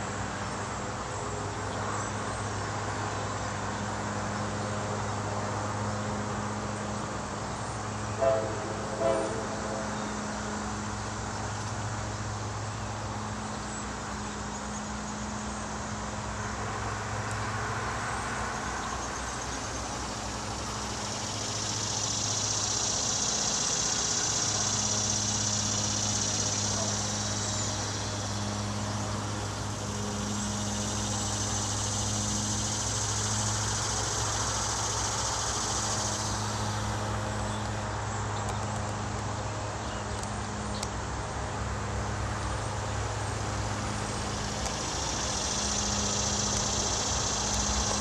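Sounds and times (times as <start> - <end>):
diesel locomotive engine hum: 0.0 - 48.0.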